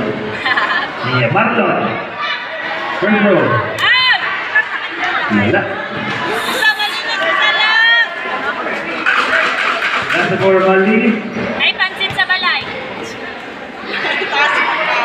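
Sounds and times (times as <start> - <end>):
crowd shouting and chatter: 0.0 - 15.0
loud calls: 6.3 - 7.5.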